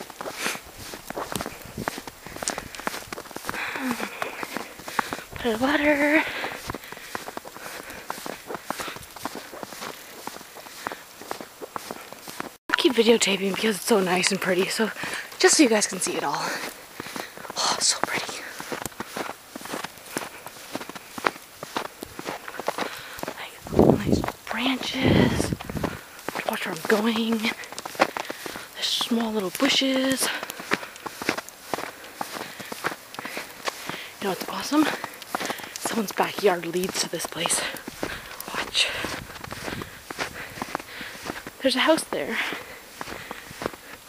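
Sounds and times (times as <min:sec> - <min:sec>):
footsteps in snow: 0:00.0 - 0:44.0.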